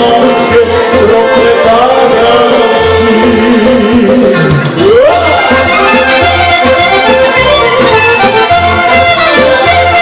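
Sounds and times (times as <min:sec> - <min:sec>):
accordion: 0:00.0 - 0:10.0
clarinet melody: 0:00.0 - 0:10.0
pulsing bass notes: 0:00.0 - 0:10.0.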